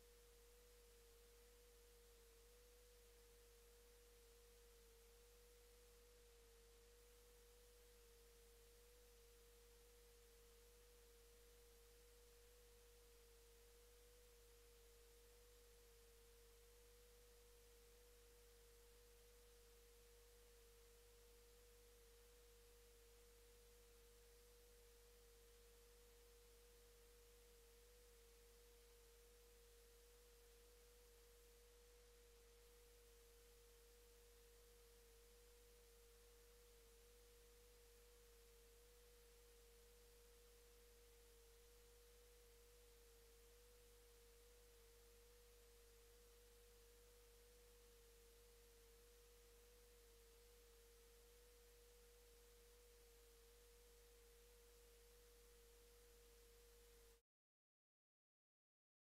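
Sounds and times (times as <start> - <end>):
faint steady pure tone: 0.0 - 57.2.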